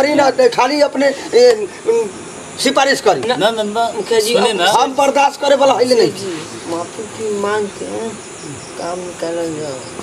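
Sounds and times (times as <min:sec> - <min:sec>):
man talking: 0:00.0 - 0:06.7
crickets chirping: 0:00.0 - 0:10.0.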